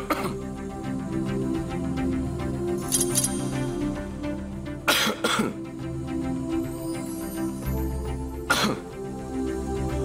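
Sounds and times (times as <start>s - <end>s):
man coughing: 0.0s - 0.4s, 4.9s - 5.6s, 8.5s - 8.8s
soft background music: 0.0s - 10.0s.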